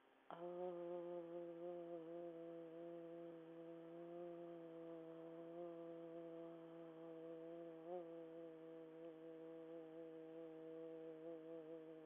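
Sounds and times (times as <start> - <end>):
woman singing low aaah: 0.3 - 12.0.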